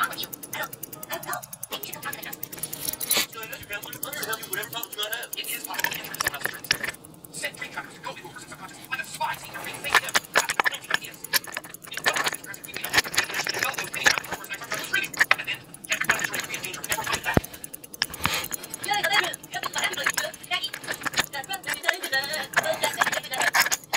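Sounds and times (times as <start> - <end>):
small metallic clicks and rattles: 0.0 - 23.9.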